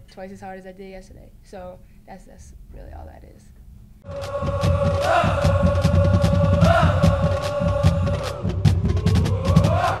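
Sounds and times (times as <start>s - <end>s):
drum hits: 4.1s - 10.0s.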